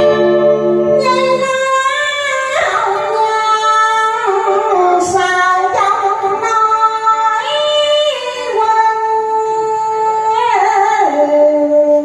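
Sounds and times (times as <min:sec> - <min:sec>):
plucked guitar: 0:00.0 - 0:07.4
moon lute: 0:00.0 - 0:12.0
woman singing into a microphone: 0:00.0 - 0:12.0.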